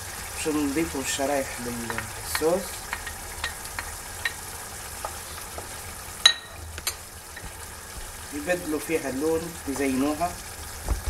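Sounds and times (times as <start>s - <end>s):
sauce hissing in frying pan: 0.0s - 11.0s
wooden spoon stirring: 0.4s - 10.4s.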